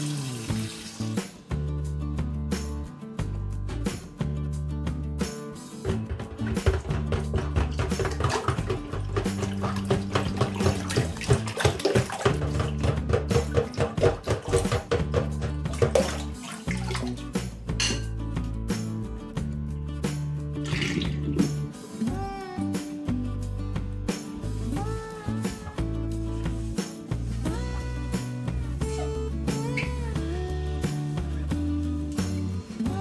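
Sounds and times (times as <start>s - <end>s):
water splashing in a sink: 0.0s - 1.4s, 5.8s - 18.0s, 20.6s - 21.8s
background music with bass line: 0.0s - 33.0s.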